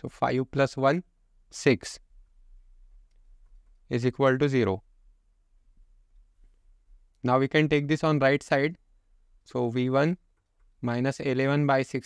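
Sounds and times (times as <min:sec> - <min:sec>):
man speaking: 0:00.0 - 0:02.1, 0:03.8 - 0:04.9, 0:07.2 - 0:08.8, 0:09.5 - 0:10.2, 0:10.8 - 0:12.0.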